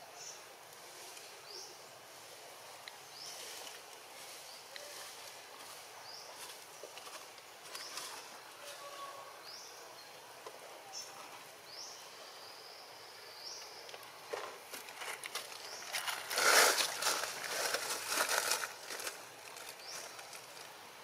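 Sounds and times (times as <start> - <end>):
high hiss of insects: 0.0 - 21.0.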